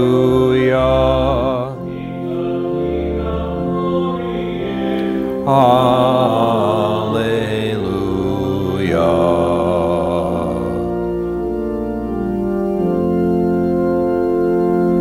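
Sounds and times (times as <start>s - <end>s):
church organ chords: 0.0s - 15.0s
person singing a hymn with vibrato: 0.0s - 15.0s.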